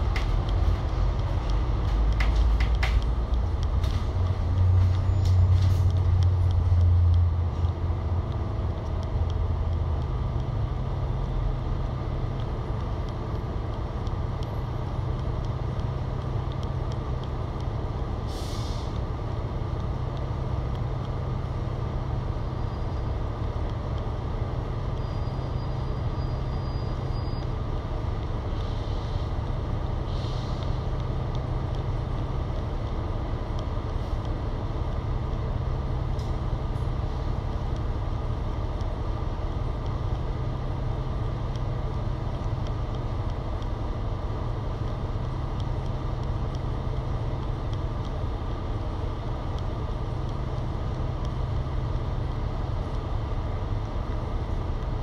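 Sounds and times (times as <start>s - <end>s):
bus diesel engine idling: 0.0s - 55.0s
compressed air hisses: 18.3s - 18.9s.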